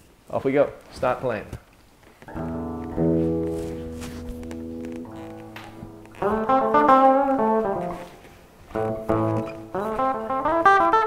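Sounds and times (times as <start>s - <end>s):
clean electric guitar chords: 2.3s - 11.0s.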